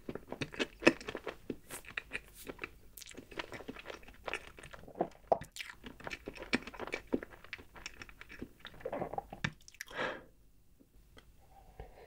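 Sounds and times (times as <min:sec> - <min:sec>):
mouth chewing wet clicks: 0:00.4 - 0:09.9.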